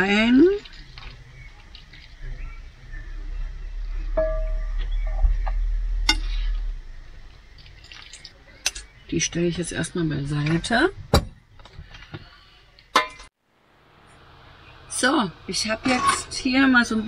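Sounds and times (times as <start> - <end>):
water dripping and splashing: 0.0 - 2.4, 7.0 - 9.0
pot ringing: 4.2 - 5.2.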